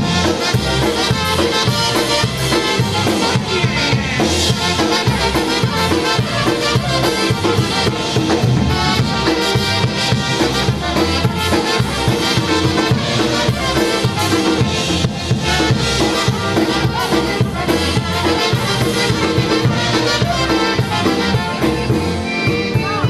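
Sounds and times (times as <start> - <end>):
polka band playing: 0.0 - 23.0.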